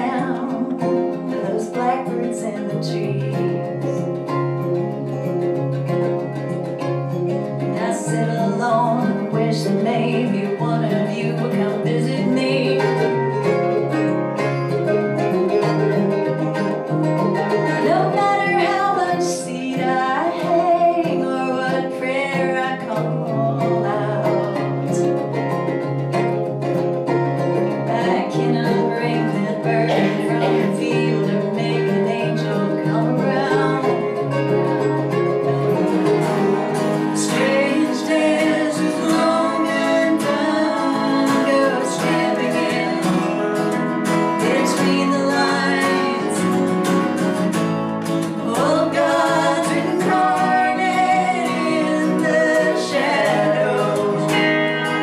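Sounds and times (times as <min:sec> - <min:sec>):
person singing: 0:00.0 - 0:04.4, 0:07.4 - 0:14.7, 0:17.4 - 0:25.4, 0:27.7 - 0:47.4, 0:48.0 - 0:55.0
acoustic guitar: 0:00.0 - 0:55.0
electric guitar: 0:00.0 - 0:55.0
mandolin: 0:00.0 - 0:55.0.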